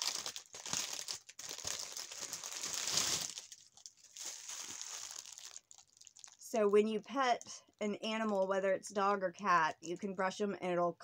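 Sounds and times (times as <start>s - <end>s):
plastic packaging crinkling: 0.0s - 8.5s.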